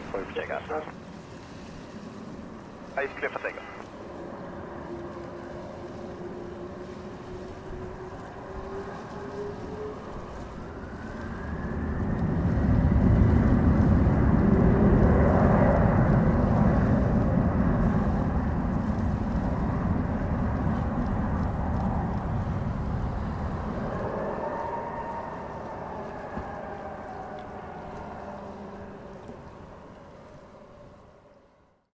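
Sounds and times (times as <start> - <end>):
jet engines spooling up whine: 0.0 - 31.9
jet rumble on takeoff: 0.0 - 31.9.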